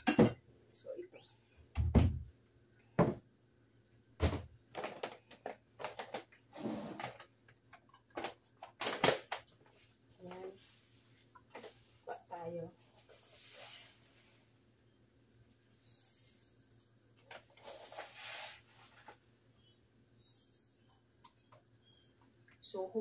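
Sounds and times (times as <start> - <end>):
glass bowl knocking and clunking: 0.0 - 0.4.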